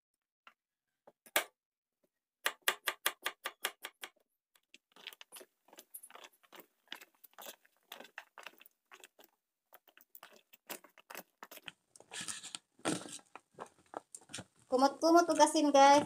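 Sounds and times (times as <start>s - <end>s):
hands squeezing fruit pieces: 4.7s - 14.7s.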